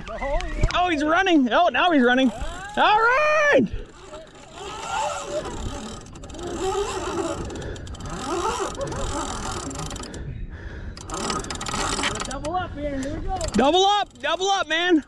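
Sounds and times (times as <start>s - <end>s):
faint voices: 2.1s - 10.1s
fishing reel drag clicking: 2.1s - 10.2s, 10.9s - 15.0s.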